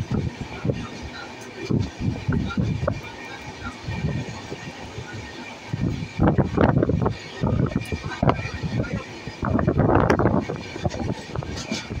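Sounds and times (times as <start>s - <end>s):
train wheels clattering on rails: 0.0s - 12.0s
wind on microphone: 0.0s - 12.0s.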